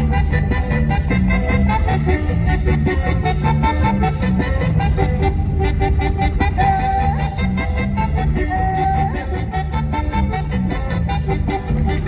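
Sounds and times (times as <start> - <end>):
instrumental music with steady beat: 0.0 - 12.0.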